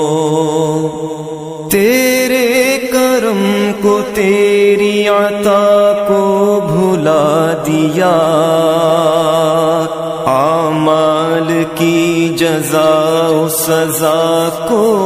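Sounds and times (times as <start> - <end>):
wordless vocal chanting: 0.0 - 15.0.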